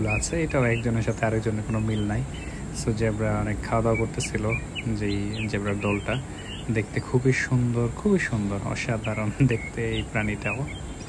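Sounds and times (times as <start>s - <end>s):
people talking indistinctly: 0.0s - 10.7s
crickets chirping: 0.0s - 11.0s.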